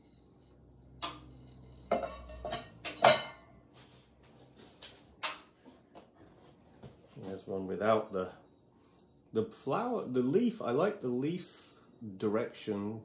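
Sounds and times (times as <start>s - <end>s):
ceramic bowls clinking: 0.9s - 3.6s.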